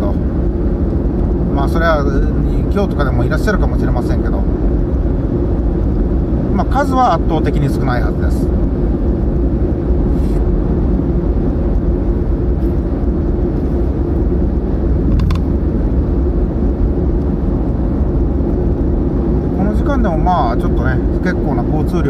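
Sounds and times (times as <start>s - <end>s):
road and engine rumble: 0.0s - 22.0s.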